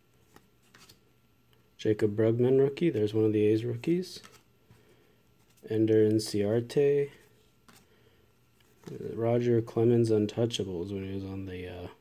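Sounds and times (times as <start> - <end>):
trading cards rustling: 0.2 - 1.0, 3.8 - 8.0, 8.6 - 9.2.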